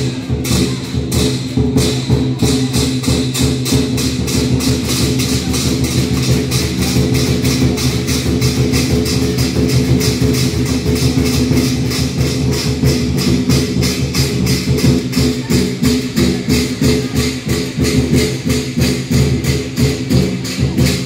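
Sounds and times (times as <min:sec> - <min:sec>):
drum and cymbal beat: 0:00.0 - 0:21.0.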